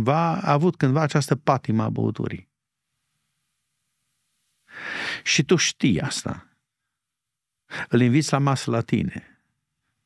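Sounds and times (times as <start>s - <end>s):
man drawing breath: 4.6s - 5.2s.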